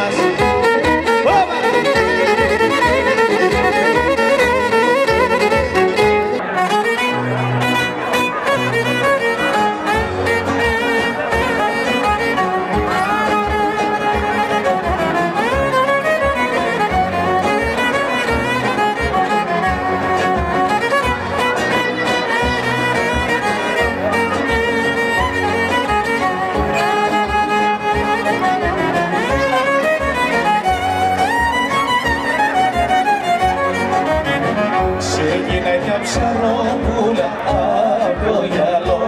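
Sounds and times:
live band playing folk dance tune: 0:00.0 - 0:39.0.

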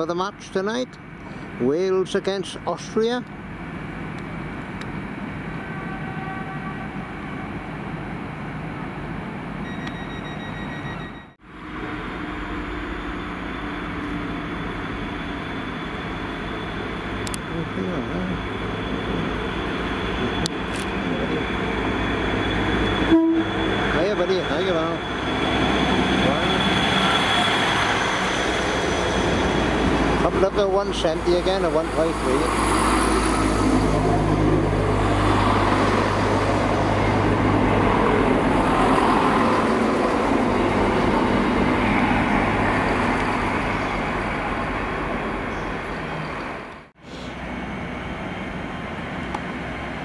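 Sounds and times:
train arriving with high whine: 0:00.0 - 0:50.0
train horn toot: 0:05.6 - 0:07.1, 0:23.0 - 0:23.7.

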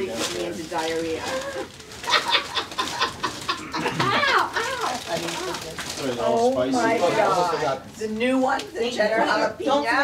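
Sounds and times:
people laughing: 0:02.0 - 0:04.7.

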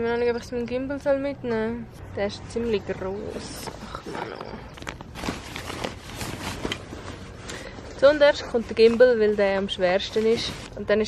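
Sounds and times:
nylon fabric rustling: 0:03.0 - 0:11.0.

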